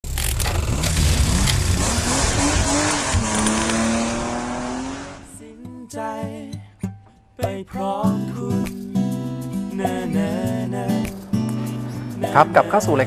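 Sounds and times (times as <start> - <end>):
rising tone: 0.4 - 5.6
loud rushing noise: 0.6 - 5.4
guitar music: 1.0 - 13.0.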